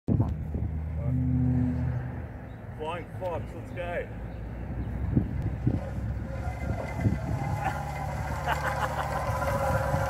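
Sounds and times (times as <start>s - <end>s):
vehicle engine humming: 0.1s - 10.0s.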